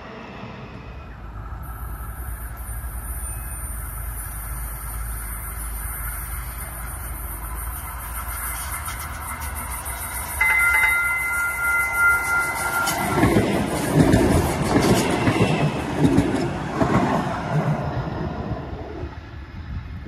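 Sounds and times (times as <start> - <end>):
train rumbling and clattering past: 0.0 - 20.0
high-pitched tone: 10.0 - 14.4.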